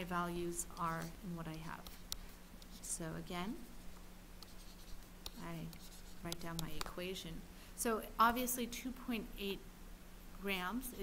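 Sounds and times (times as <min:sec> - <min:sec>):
steady low hum: 0:00.0 - 0:11.0
pen tapping and scratching tablet: 0:00.7 - 0:02.9, 0:04.4 - 0:07.0.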